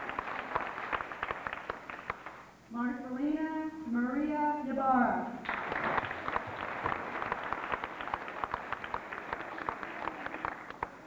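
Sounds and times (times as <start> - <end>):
audience applauding: 0.0 - 2.5, 5.4 - 11.0.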